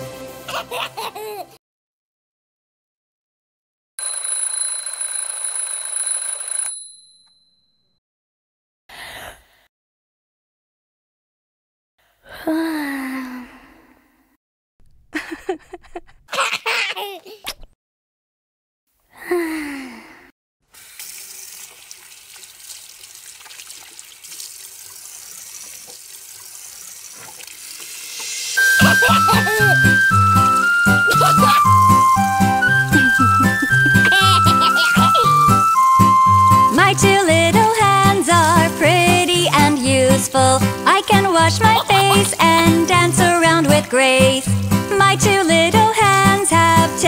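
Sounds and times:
music: 0.0s - 1.5s, 28.6s - 47.0s
alarm clock bells ringing: 4.0s - 7.3s, 28.6s - 29.7s
tap water running into basin: 20.8s - 32.2s, 36.6s - 46.2s.

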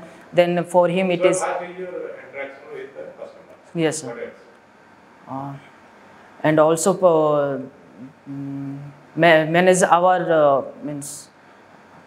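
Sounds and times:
man speaking: 1.0s - 4.5s
man humming in hesitation: 8.0s - 9.0s.

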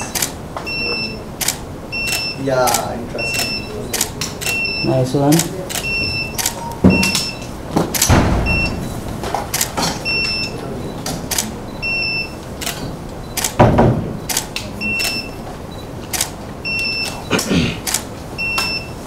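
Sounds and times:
camera shutters clicking: 0.0s - 0.4s, 1.4s - 4.6s, 5.4s - 7.3s, 7.9s - 8.2s, 9.5s - 9.9s, 11.2s - 11.5s, 12.6s - 13.6s, 14.3s - 15.2s, 16.1s - 16.4s, 17.9s - 18.1s
high focus beeps: 0.0s - 1.3s, 1.9s - 7.6s, 8.4s - 9.1s, 10.0s - 13.6s, 14.2s - 17.4s, 18.4s - 19.0s
heavy thumps: 6.8s - 10.2s.

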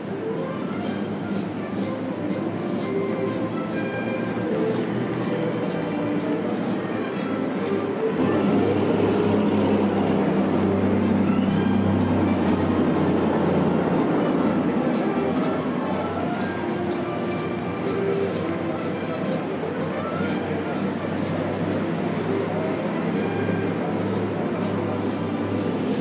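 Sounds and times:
deep engine drone: 0.0s - 26.0s
heavy military vehicles driving past: 0.0s - 26.0s.

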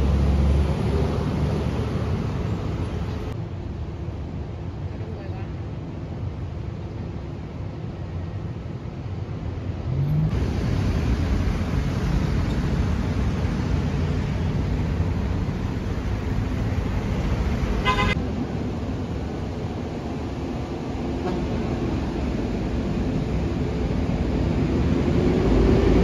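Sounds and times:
passing cars and buses: 0.0s - 26.0s
car horn toot: 17.8s - 18.2s.

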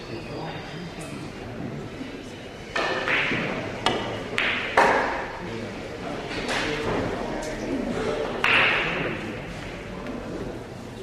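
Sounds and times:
low voices: 5.3s - 11.0s
pool ball knock: 8.4s - 9.1s.

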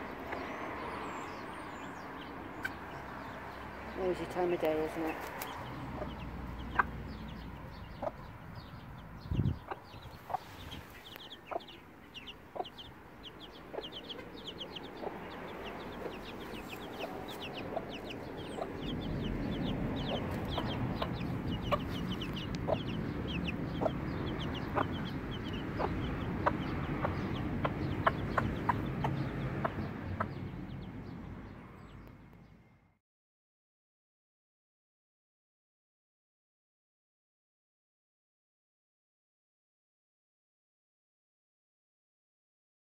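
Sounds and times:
chicks peeping: 0.0s - 32.2s
hen clucking softly: 9.6s - 18.9s.

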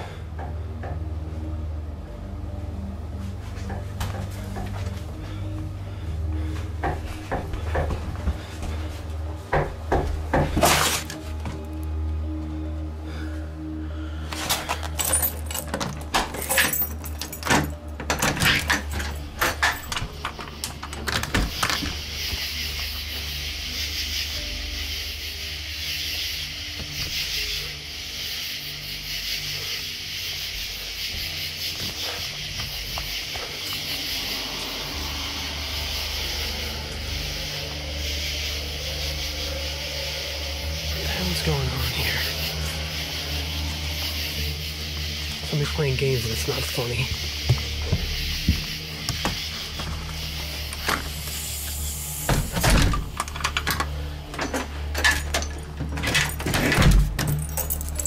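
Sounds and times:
low hum: 0.0s - 58.0s
keys jangling in a lock: 14.5s - 21.8s, 53.2s - 58.0s
steady hiss: 19.2s - 54.8s.

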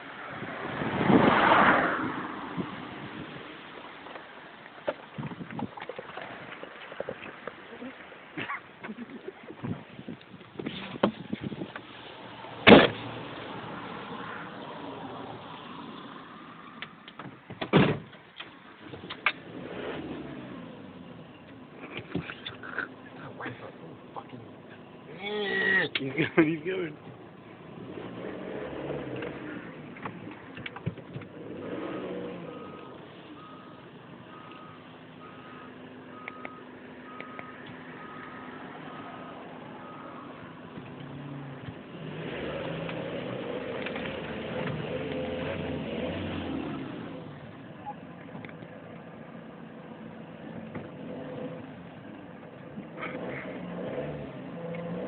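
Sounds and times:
reversing alarm beeps: 32.6s - 39.2s, 39.8s - 40.4s.

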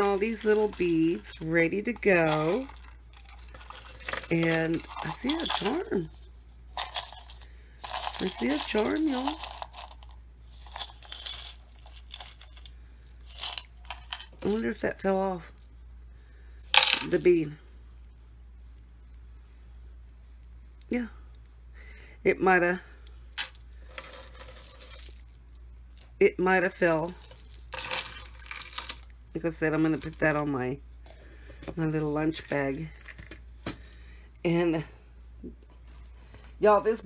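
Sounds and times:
bead charms clinking: 0.0s - 6.1s, 6.8s - 14.6s, 23.4s - 26.1s, 26.7s - 29.1s.

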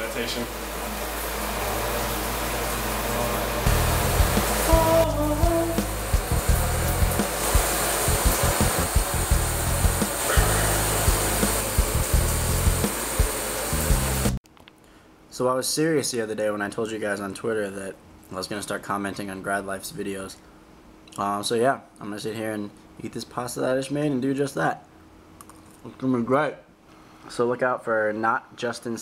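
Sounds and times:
shower spray hissing: 0.0s - 14.4s
music with a steady beat: 3.7s - 14.4s.

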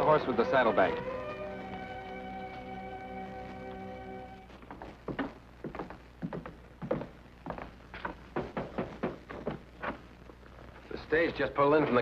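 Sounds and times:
short irregular knocks: 8.0s - 9.7s.

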